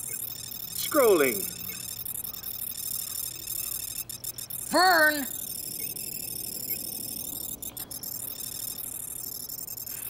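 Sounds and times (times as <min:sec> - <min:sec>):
high-pitched electronic trill: 0:00.0 - 0:09.9.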